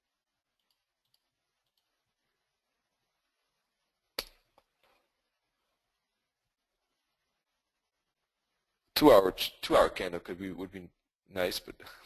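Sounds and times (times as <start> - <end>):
computer mouse clicks: 0.6 - 1.9.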